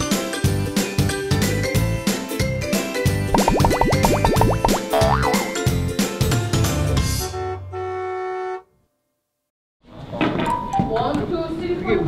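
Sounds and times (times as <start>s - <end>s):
cartoon intro jingle: 3.4s - 5.6s.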